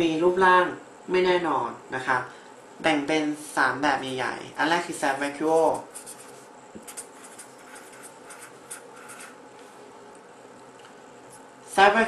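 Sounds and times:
pen scratching on paper: 0:05.8 - 0:09.4.

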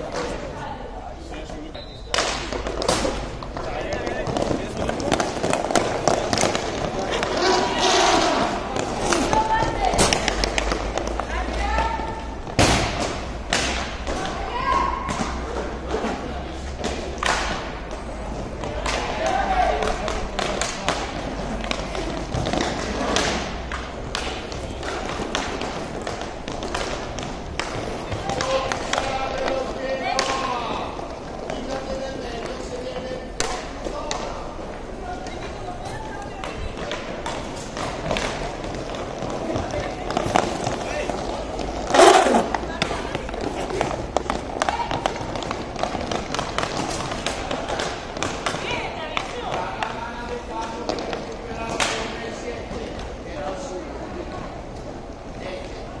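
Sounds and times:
hockey sticks and puck clacking: 0:01.3 - 0:55.9.

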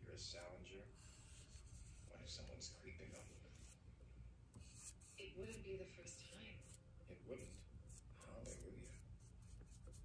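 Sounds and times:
paintbrush strokes: 0:00.1 - 0:03.9, 0:04.6 - 0:10.0.

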